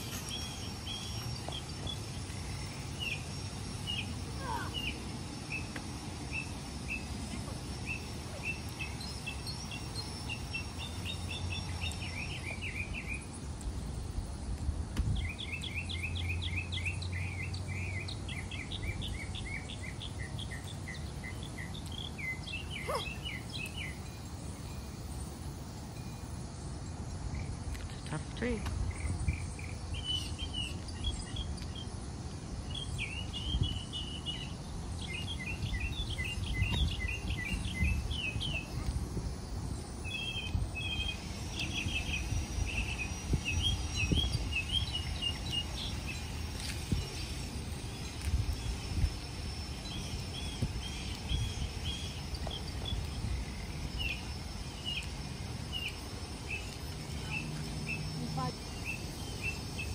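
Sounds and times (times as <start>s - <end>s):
small birds chirping: 0.0s - 59.9s.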